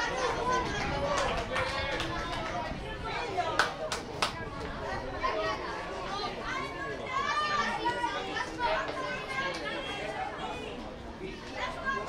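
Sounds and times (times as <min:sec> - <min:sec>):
voices chattering and calling out: 0:00.0 - 0:12.0.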